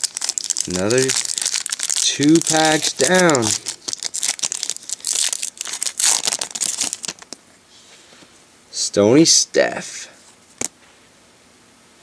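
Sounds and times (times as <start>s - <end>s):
foil wrapper crinkling: 0.0s - 7.4s.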